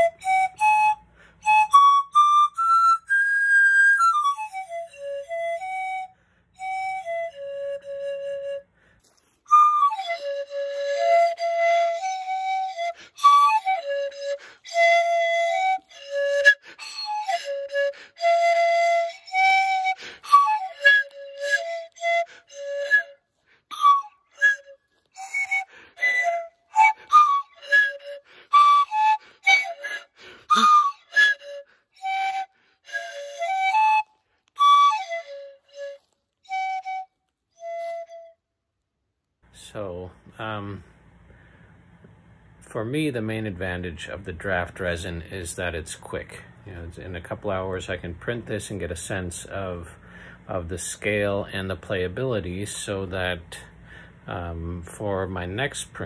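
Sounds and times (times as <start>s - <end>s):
pan flute melody: 0.0s - 38.6s.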